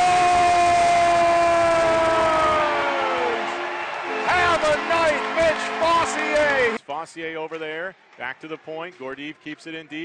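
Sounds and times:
crowd cheering: 0.0s - 6.8s
goal horn blaring: 2.4s - 6.8s.

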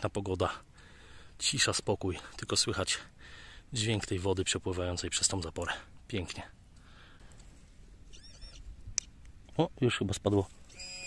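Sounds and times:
high squeaky chirping call: 8.0s - 9.2s, 10.7s - 11.0s.

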